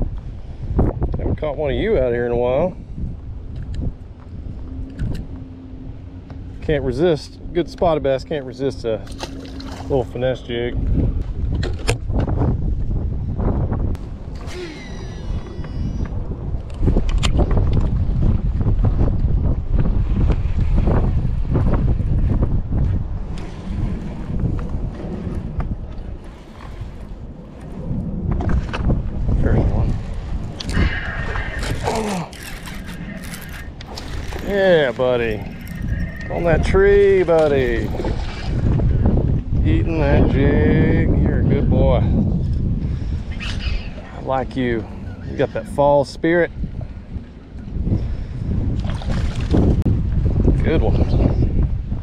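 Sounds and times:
wind buffeting microphone: 0:00.0 - 0:52.0
fishing tackle clicks and knocks: 0:03.5 - 0:05.4, 0:11.2 - 0:12.3, 0:31.6 - 0:35.9.

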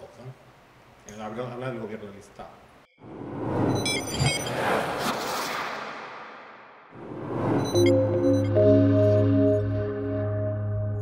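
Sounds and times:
whoosh: 0:03.0 - 0:08.4
high electronic blips: 0:03.5 - 0:04.7, 0:07.3 - 0:09.7.

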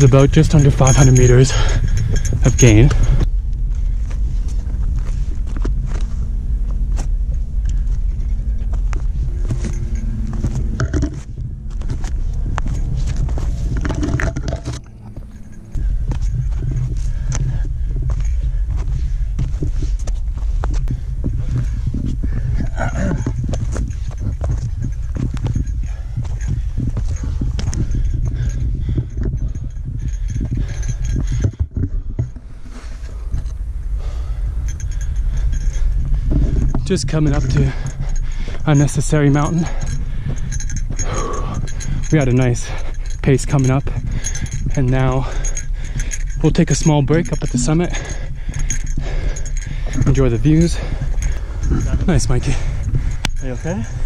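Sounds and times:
clinking gear: 0:00.0 - 0:06.2, 0:06.9 - 0:54.0
footsteps and scuffs on trail: 0:00.0 - 0:54.0
wind rumble: 0:00.0 - 0:54.0.

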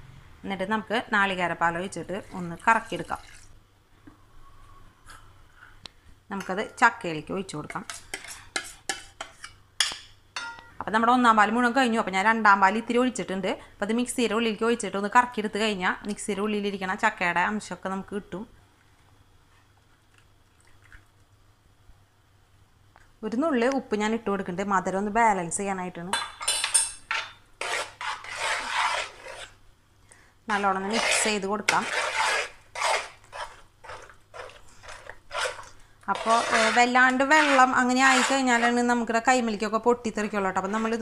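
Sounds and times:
liquid scraped into metal pan: 0:07.8 - 0:09.6, 0:27.1 - 0:29.6, 0:30.5 - 0:38.8
metal spoon clinking on steel vessels: 0:08.1 - 0:10.7, 0:26.1 - 0:27.4
hand mixing thick pulp: 0:27.6 - 0:29.6, 0:30.5 - 0:39.0.

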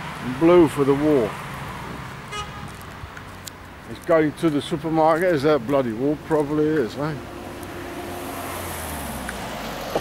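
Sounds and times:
street traffic: 0:00.0 - 0:10.0
car horn toot: 0:02.3 - 0:02.7.

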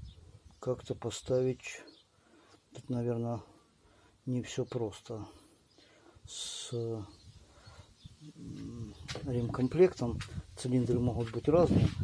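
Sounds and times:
man saying uh: 0:08.2 - 0:11.8.

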